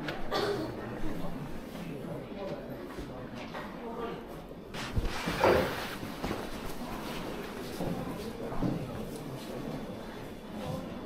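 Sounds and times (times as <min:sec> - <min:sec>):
footsteps: 0:04.8 - 0:09.8.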